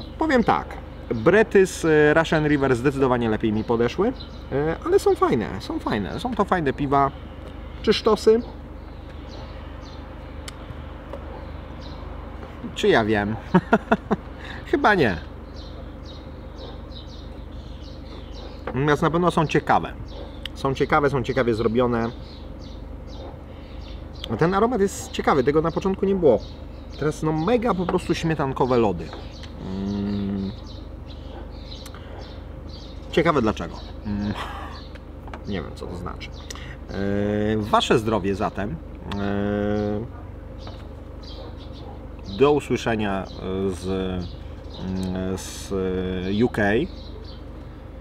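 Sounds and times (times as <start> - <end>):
low outdoor hum: 0.0 - 48.0
small birds chirping: 0.0 - 48.0
man humming: 29.6 - 30.6.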